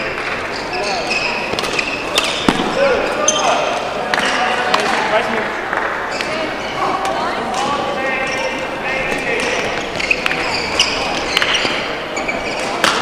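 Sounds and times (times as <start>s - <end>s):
voices: 0.0s - 13.0s
sneaker squeaks on court floor: 0.2s - 3.8s, 6.1s - 7.0s, 8.1s - 13.0s
rackets hitting shuttlecocks: 1.4s - 3.2s, 9.1s - 13.0s.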